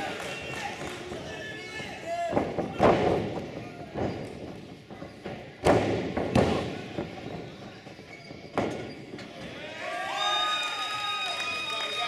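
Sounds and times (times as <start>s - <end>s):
body thudding on ring mat: 2.4s - 7.5s.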